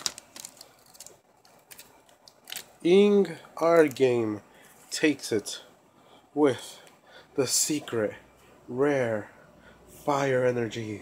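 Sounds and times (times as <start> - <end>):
cards ticking and rustling: 0.0 - 2.8
man speaking: 2.8 - 5.7, 6.4 - 9.4, 10.0 - 11.0.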